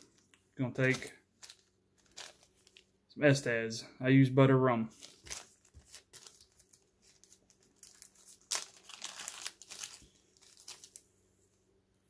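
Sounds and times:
plastic packet crinkling: 0:00.0 - 0:02.9, 0:04.9 - 0:11.1.

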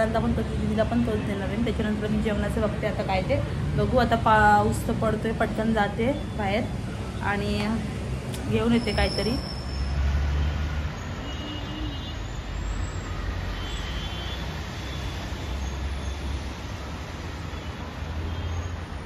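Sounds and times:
distant road traffic: 0:00.0 - 0:19.0.

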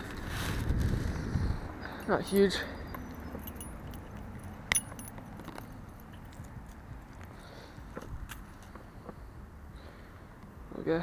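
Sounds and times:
fishing lure clinking and clicking: 0:02.0 - 0:06.5.

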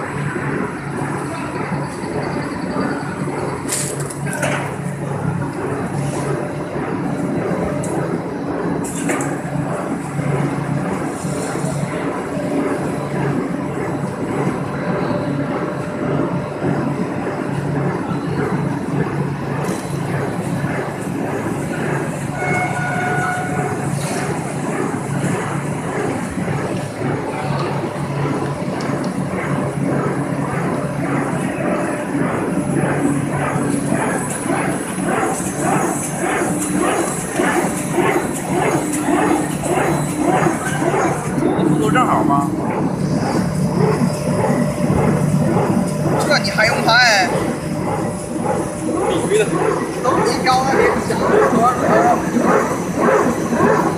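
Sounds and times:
constant low hum: 0:00.0 - 0:53.9
dense mechanical clatter: 0:00.0 - 0:53.9.

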